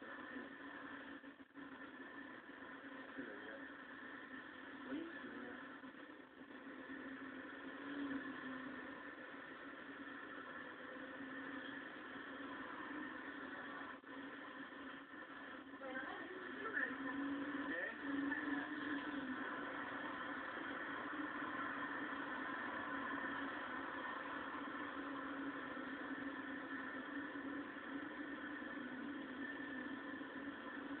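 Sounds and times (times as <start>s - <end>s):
car engine drone: 16.5s - 31.0s.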